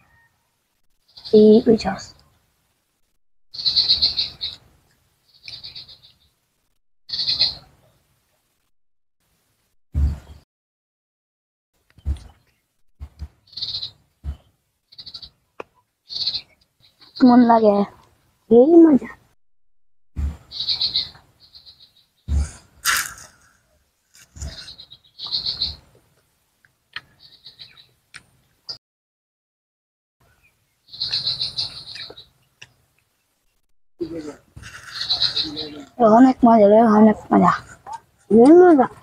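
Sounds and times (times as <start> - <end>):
high-pitched chirping trill: 7.1 - 7.7
soft low thumps: 10.0 - 10.4, 20.2 - 20.4.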